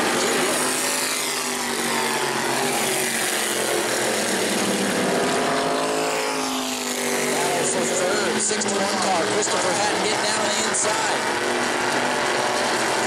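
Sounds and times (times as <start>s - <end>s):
race car engines passing: 0.0s - 13.0s.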